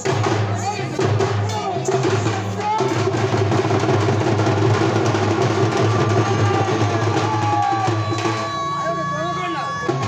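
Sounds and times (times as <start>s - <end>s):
drums played loud and fast: 0.0s - 10.0s.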